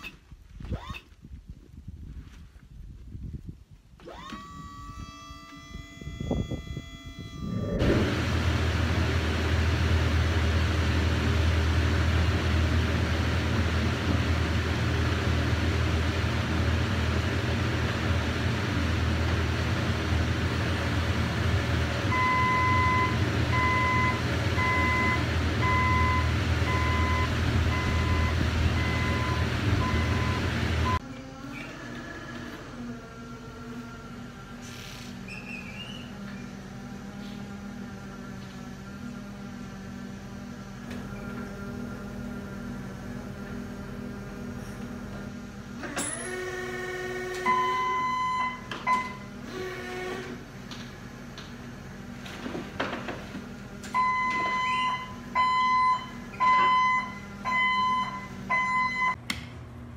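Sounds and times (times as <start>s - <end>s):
forklift engine running: 4.0s - 59.9s
reversing alarm beeping: 4.2s - 7.9s, 22.1s - 31.0s, 47.4s - 49.3s, 54.0s - 59.2s.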